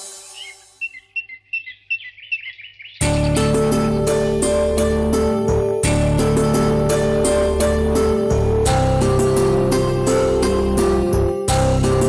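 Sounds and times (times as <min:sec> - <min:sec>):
small bird chirping: 0:00.0 - 0:04.4
background music: 0:03.0 - 0:12.0
loud rhythmic music: 0:03.0 - 0:12.0.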